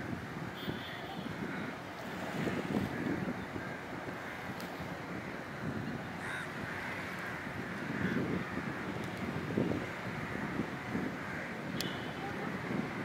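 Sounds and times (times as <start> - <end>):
steady outdoor noise: 0.0 - 13.0
wind gusts on microphone: 0.0 - 13.0.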